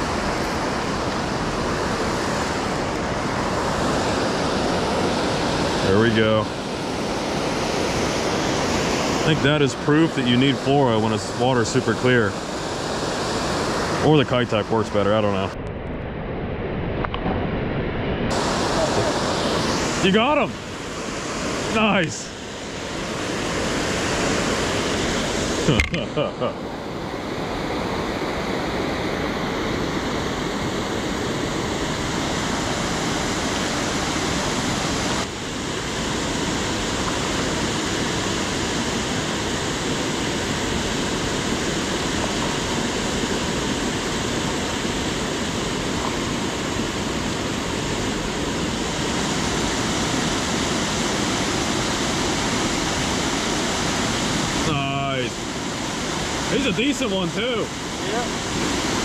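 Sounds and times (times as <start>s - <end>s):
water rushing over spillway: 0.0s - 15.6s, 18.3s - 59.0s.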